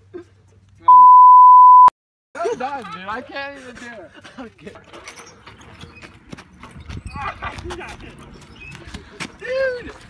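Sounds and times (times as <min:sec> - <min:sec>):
high censor bleep tone: 0:00.9 - 0:01.9.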